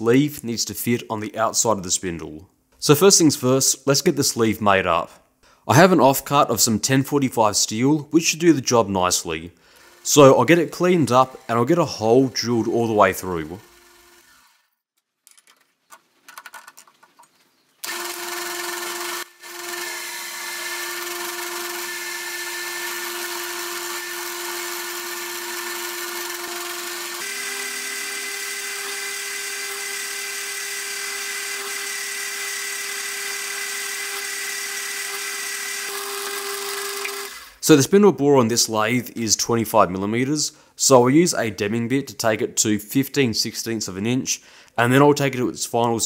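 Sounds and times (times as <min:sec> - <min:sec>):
drill boring into metal: 0:09.7 - 0:14.7, 0:17.8 - 0:37.6
metal lathe cutting steel: 0:09.8 - 0:14.7, 0:17.8 - 0:37.5.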